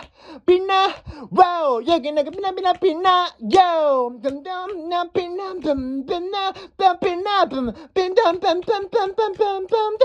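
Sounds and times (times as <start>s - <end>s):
young man singing rapid syllables: 0.0s - 10.0s.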